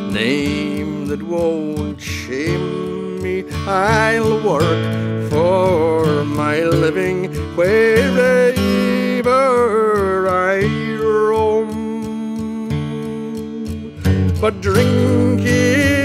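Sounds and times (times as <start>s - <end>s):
man singing: 0.0s - 16.0s
plucked acoustic guitar: 0.0s - 16.0s.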